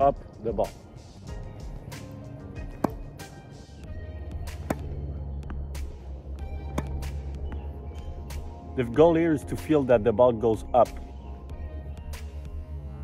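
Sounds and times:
background music with beat: 0.0s - 13.0s
tennis racket hitting ball: 1.9s - 7.6s.

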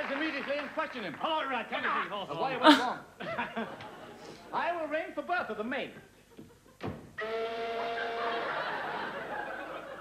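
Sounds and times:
audience laughter: 7.8s - 10.0s.

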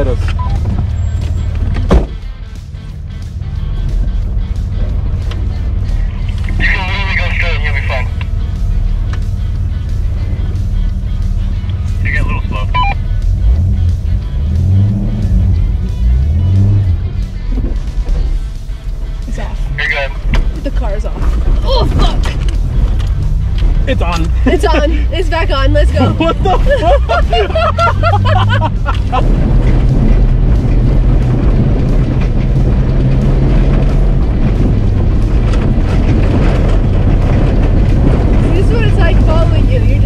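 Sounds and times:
truck engine running: 0.0s - 40.0s
body knocks and rattles: 0.6s - 2.3s, 31.1s - 40.0s.

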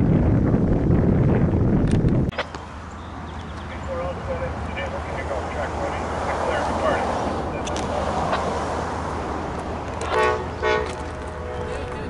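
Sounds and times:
train horn blasts: 10.0s - 12.0s.

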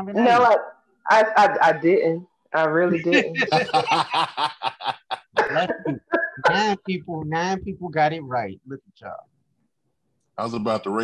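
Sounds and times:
person speaking: 0.0s - 2.0s, 2.7s - 9.3s
person chuckling: 3.1s - 6.8s.

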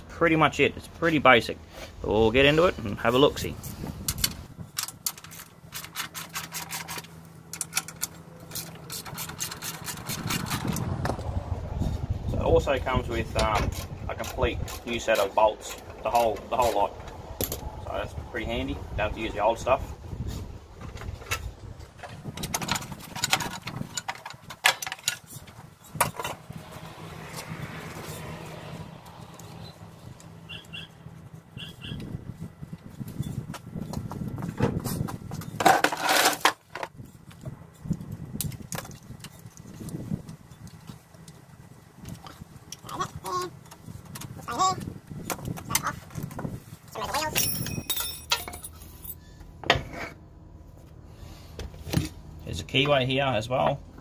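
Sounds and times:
ringing metal clatter: 47.2s - 49.2s
metallic clinks of hand tools: 47.3s - 49.2s.

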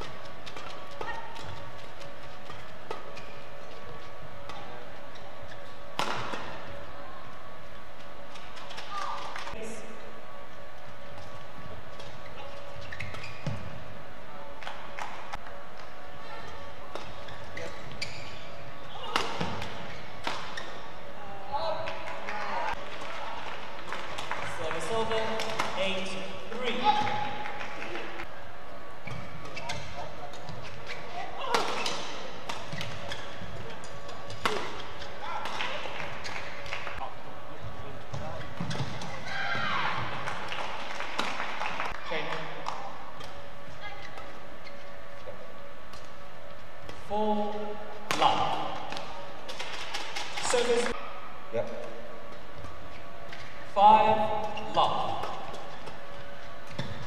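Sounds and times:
rackets smacking shuttlecock: 5.9s - 6.6s, 19.0s - 20.8s, 29.1s - 37.0s, 48.1s - 51.0s.

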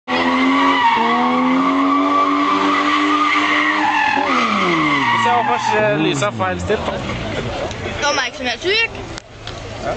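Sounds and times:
engine at high revs: 0.1s - 7.8s
tyres squealing: 0.2s - 7.2s.

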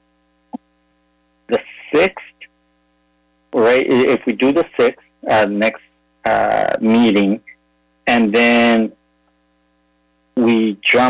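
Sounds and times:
faint electrical hum: 0.0s - 11.0s
person speaking: 1.5s - 2.5s, 3.6s - 9.0s, 10.4s - 11.0s.

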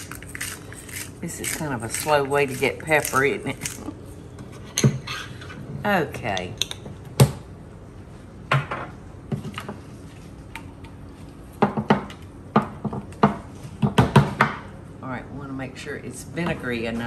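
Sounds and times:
utensil clinking glass bowl: 0.0s - 3.8s.

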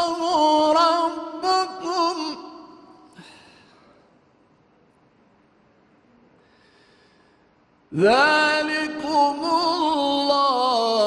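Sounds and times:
man chanting loudly: 0.0s - 3.1s, 8.0s - 11.0s.

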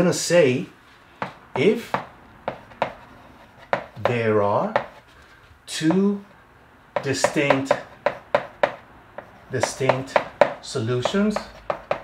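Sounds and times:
chalk clicking on board: 1.2s - 5.1s, 7.0s - 12.0s
chalk scratching on blackboard: 1.2s - 5.4s, 7.0s - 12.0s.

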